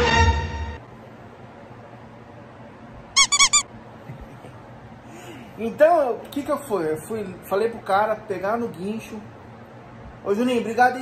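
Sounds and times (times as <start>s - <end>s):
high-pitched squeaks: 3.2s - 3.6s.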